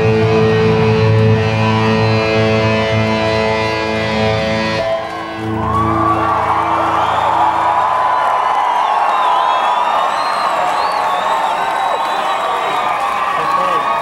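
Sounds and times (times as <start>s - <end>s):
distorted electric guitar chord: 0.0s - 6.0s
audience cheering and screaming: 3.6s - 14.0s.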